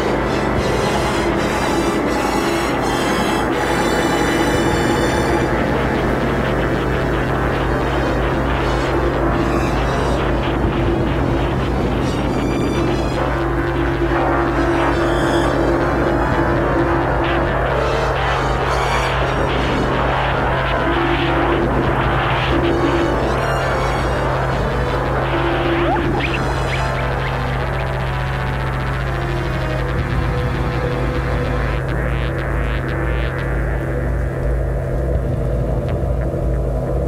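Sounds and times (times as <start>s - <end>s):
dense wash of noise: 0.0s - 37.0s
eerie electronic synthesizer music: 0.0s - 37.0s.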